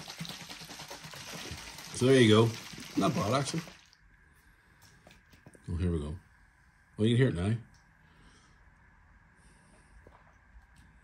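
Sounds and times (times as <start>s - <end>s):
drink sloshing in plastic bottle: 0.0s - 4.0s.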